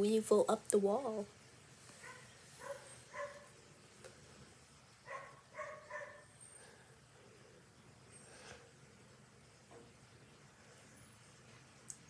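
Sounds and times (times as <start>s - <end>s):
faint dog barking: 1.9s - 3.6s, 5.0s - 6.8s.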